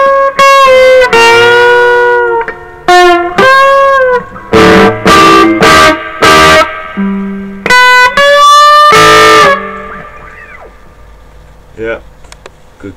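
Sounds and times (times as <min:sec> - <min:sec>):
electric guitar chords through amplifier: 0:00.0 - 0:11.4.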